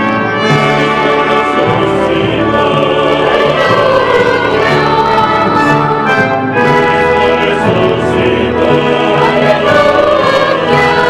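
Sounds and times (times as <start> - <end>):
choir singing sacred music: 0.0 - 11.0
instrumental accompaniment: 0.0 - 11.0.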